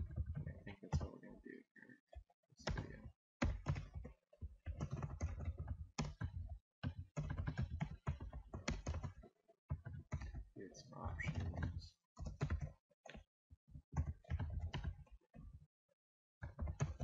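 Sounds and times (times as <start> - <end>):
computer keyboard typing: 2.6 - 10.5, 11.2 - 15.6, 16.4 - 17.0.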